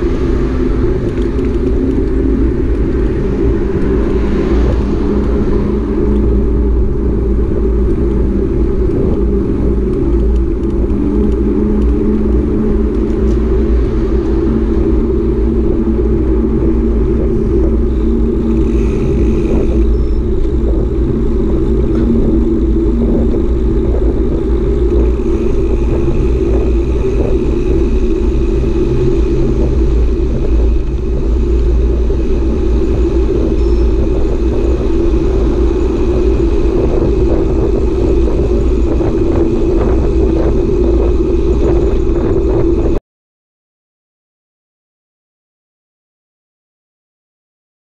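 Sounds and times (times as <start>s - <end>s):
bicycle tyre noise: 0.0s - 43.0s
wind rumble: 0.0s - 43.0s.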